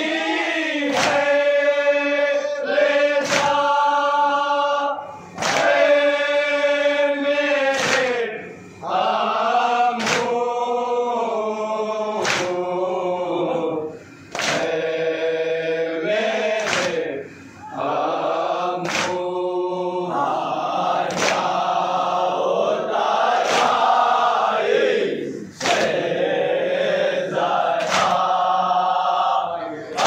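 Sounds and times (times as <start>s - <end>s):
men chanting in unison: 0.0s - 30.0s
chest-beating slaps: 0.9s - 1.4s, 3.2s - 3.6s, 5.3s - 5.8s, 7.7s - 8.2s, 10.0s - 10.4s, 12.2s - 12.6s, 14.3s - 14.8s, 16.6s - 17.0s, 18.8s - 19.2s, 21.1s - 21.5s, 25.6s - 26.0s, 27.8s - 28.2s.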